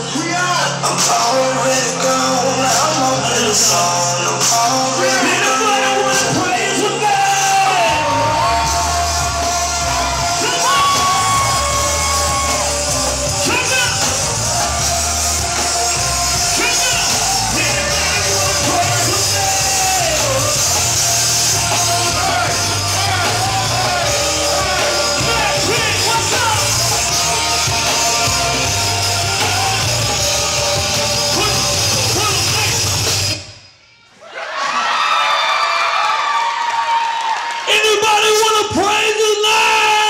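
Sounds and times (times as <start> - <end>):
people rapping and shouting: 0.0 - 33.6, 37.7 - 40.0
loud hip-hop music: 0.0 - 34.1, 37.7 - 40.0
crowd voices: 0.0 - 35.0
heavy pulsing bass beat: 7.5 - 33.4.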